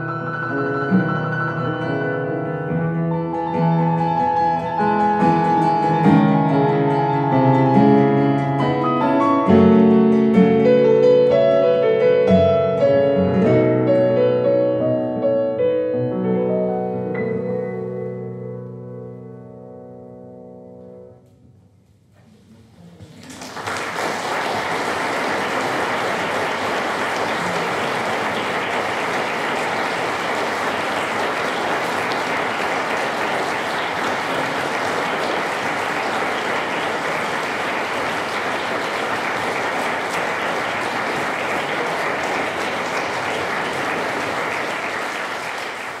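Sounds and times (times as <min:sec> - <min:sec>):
audience applauding: 0:23.0 - 0:46.0.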